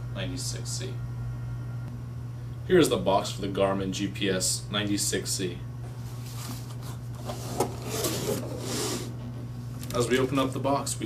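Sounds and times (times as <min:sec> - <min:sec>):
cardboard flaps scraping: 0:06.0 - 0:09.1.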